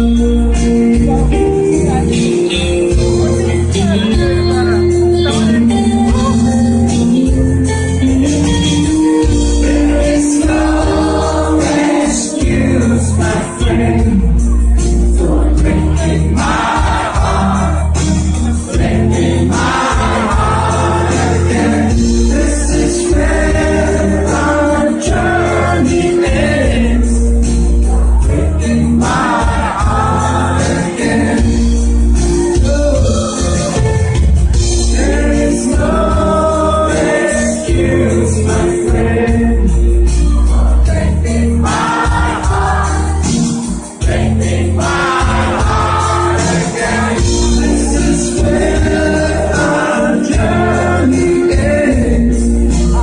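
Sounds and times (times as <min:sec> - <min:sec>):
drums: 0:00.0 - 0:53.0
heavy bass line: 0:00.0 - 0:53.0
live band playing pop song: 0:00.0 - 0:53.0
person singing: 0:44.2 - 0:53.0.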